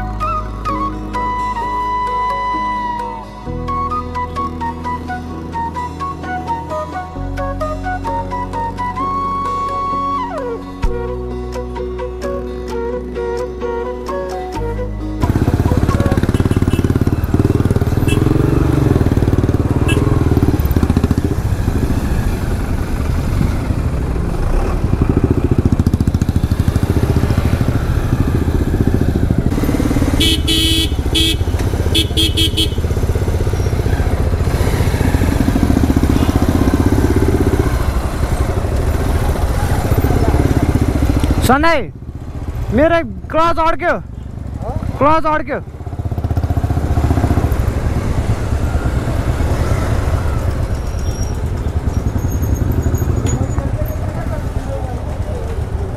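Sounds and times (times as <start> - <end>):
motorcycle engine running: 15.2 - 43.3, 44.0 - 55.9
vehicle horn beeps: 16.0 - 17.2, 17.9 - 18.6, 19.7 - 20.5, 30.1 - 33.0, 36.0 - 36.8.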